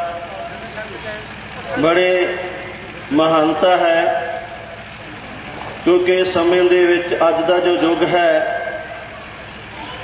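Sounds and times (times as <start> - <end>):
steady background noise: 0.0 - 10.0
man preaching through microphone: 1.8 - 4.6, 5.9 - 9.1.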